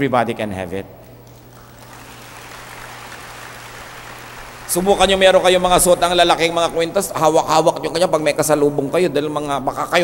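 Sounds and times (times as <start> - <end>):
low electrical hum: 0.0 - 10.0
steady background hiss: 0.0 - 10.0.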